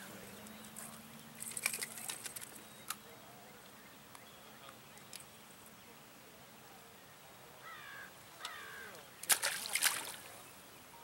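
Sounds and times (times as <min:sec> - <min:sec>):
faint bird calls: 0:06.6 - 0:09.3.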